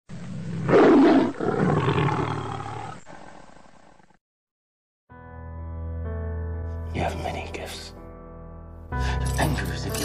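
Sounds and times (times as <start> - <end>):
big cat roaring: 0.3 - 4.2.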